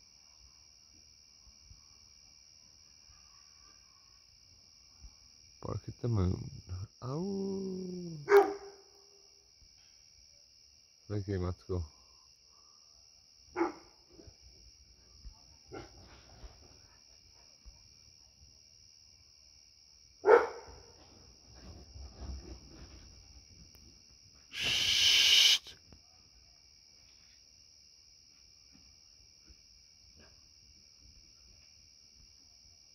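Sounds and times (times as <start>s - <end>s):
night insects droning: 0.0s - 32.9s
dog barking: 8.2s - 9.0s, 13.5s - 14.0s, 15.7s - 16.0s, 20.2s - 20.9s.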